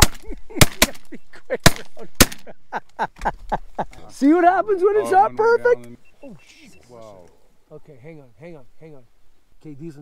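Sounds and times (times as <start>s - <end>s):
shotgun shots: 0.0s - 2.5s.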